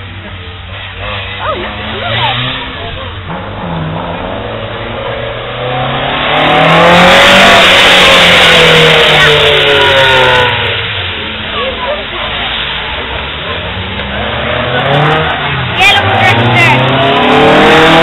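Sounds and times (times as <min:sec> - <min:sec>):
car engine revving: 0:00.0 - 0:18.0.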